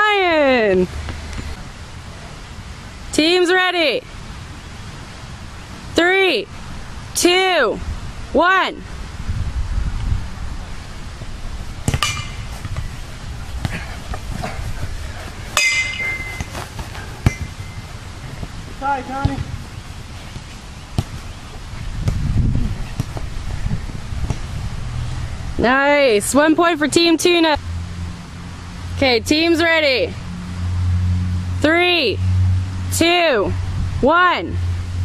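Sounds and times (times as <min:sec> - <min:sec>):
microphone movement rumble: 0:09.2 - 0:24.9.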